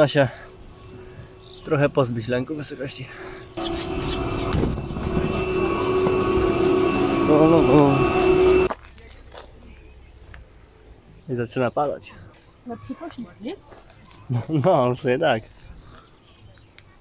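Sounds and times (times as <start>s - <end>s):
machinery hum and whine: 0.0s - 8.7s.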